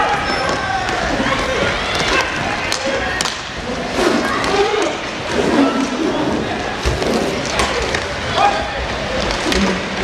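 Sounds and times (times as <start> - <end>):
thud: 6.8 - 7.7.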